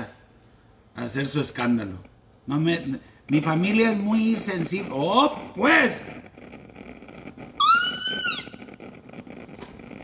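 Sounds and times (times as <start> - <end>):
faint room noise: 0.0 - 10.0
high-pitched animal call: 7.4 - 8.9.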